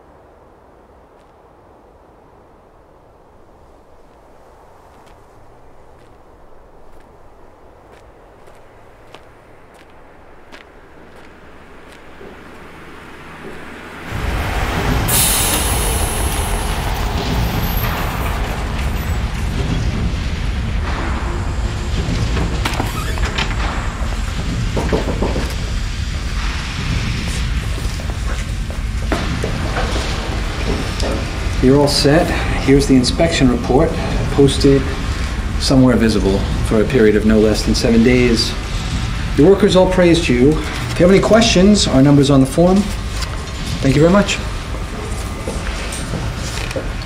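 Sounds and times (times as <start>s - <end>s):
quiet street ambience: 0.0s - 47.0s
hissing air burst: 14.1s - 24.8s.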